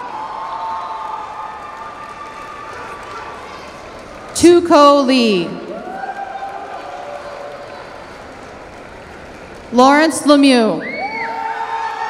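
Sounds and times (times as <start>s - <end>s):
audience cheering and clapping: 0.0s - 12.0s.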